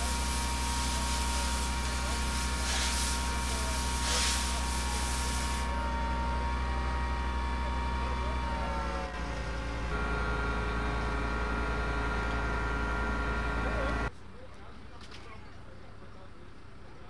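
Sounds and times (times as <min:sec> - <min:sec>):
hose spray hissing: 0:00.0 - 0:05.8
fire engine pump droning: 0:00.0 - 0:14.1.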